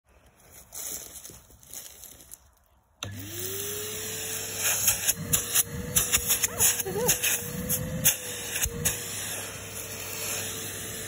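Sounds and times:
vacuum cleaner motor whining: 3.0s - 11.0s.

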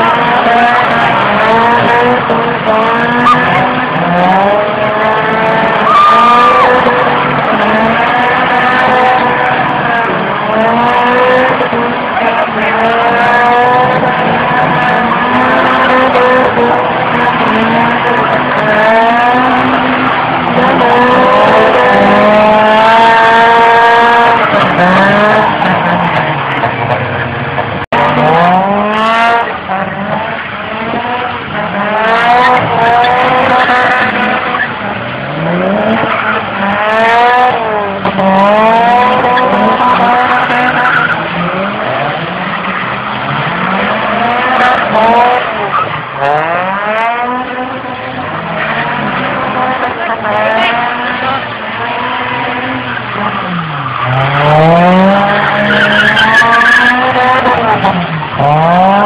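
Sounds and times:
car engines revving: 0.0s - 59.0s
tyre skid noise: 0.0s - 59.0s.

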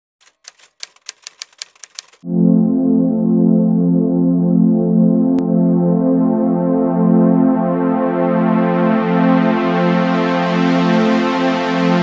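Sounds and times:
typewriter key clicks: 0.2s - 2.2s.

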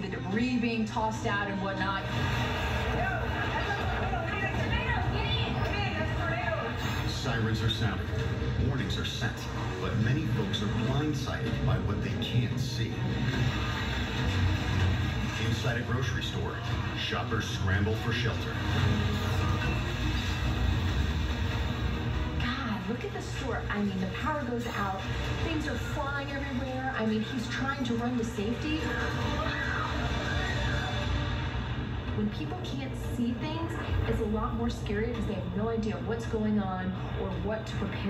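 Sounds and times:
background music: 0.0s - 38.0s.

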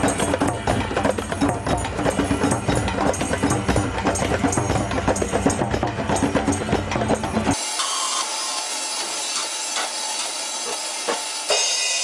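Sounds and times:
drums playing fast beat: 0.0s - 7.6s.

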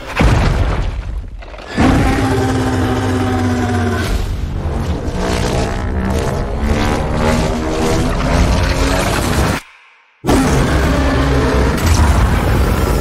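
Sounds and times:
trailer score music: 0.0s - 13.0s
monster roar: 1.7s - 9.6s, 10.2s - 13.0s.

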